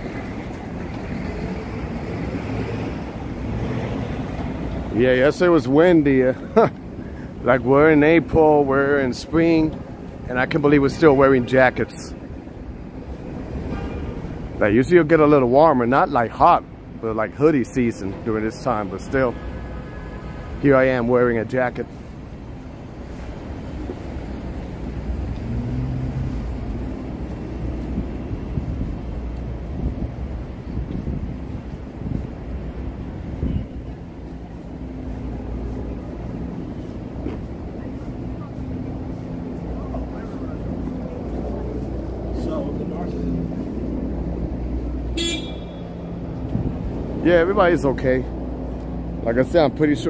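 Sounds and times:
traffic rumble: 0.0s - 50.0s
car horn toot: 45.1s - 46.1s.

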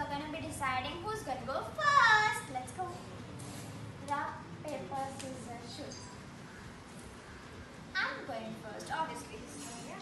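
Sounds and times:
girl speaking: 0.0s - 3.1s, 4.0s - 6.2s, 8.0s - 10.0s.

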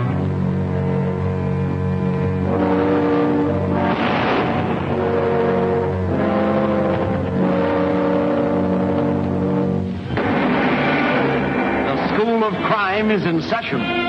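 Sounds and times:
dramatic orchestral music: 0.0s - 14.0s
explosion noise: 3.7s - 7.9s, 10.0s - 13.1s.

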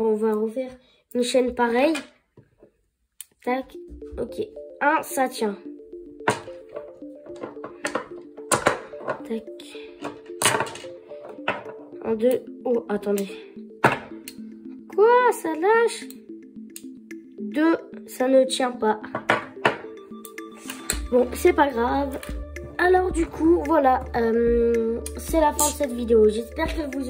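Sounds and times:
background music: 3.2s - 27.0s
magnets knocking together: 6.2s - 9.3s, 10.0s - 11.9s
magnets clicking together: 25.5s - 25.9s.

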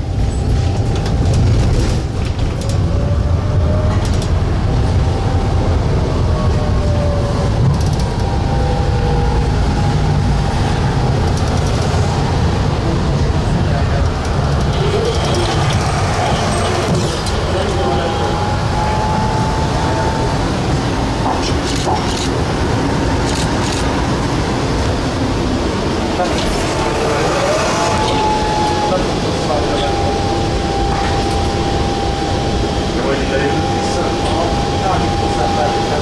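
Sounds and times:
tram rumbling on rails: 0.0s - 36.0s.

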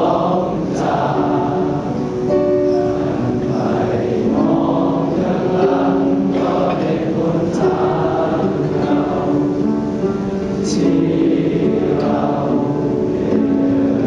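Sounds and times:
choir singing a hymn: 0.0s - 14.0s.

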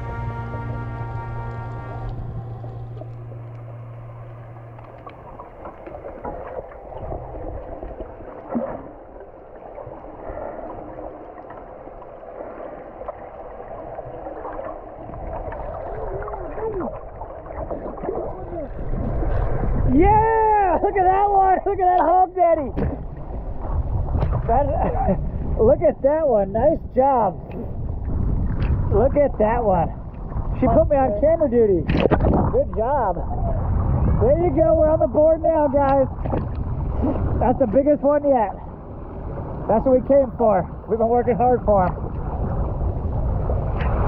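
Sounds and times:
background music: 0.0s - 4.3s
muffled underwater bubbling: 0.0s - 20.2s
muffled voice whooping: 16.0s - 17.0s.

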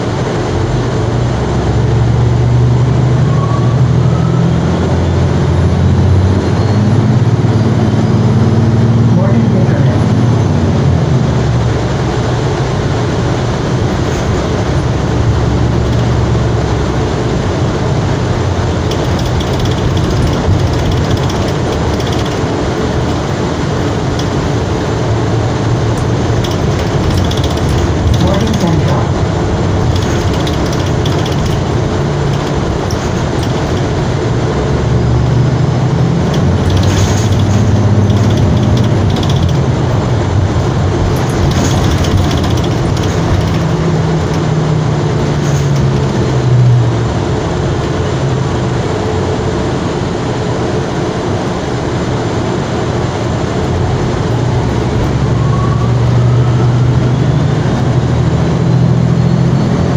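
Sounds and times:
bus interior road noise: 0.0s - 59.9s
sharp clicks: 18.8s - 24.7s, 25.9s - 29.2s, 29.8s - 34.0s, 36.2s - 44.5s.

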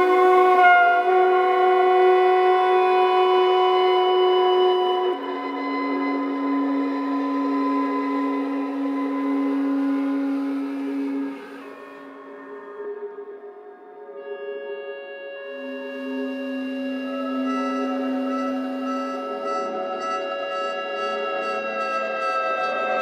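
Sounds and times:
violin held tones: 0.0s - 12.6s, 14.1s - 23.0s
soprano sax held tones: 0.0s - 13.5s, 14.1s - 23.0s
ebow guitar drone: 0.0s - 23.0s.

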